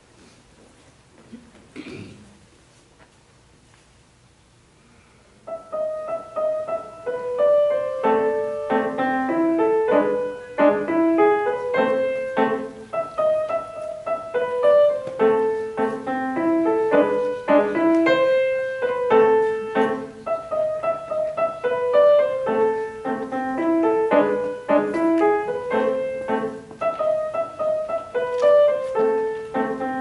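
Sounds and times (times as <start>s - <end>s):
grand piano playing: 5.4s - 30.0s.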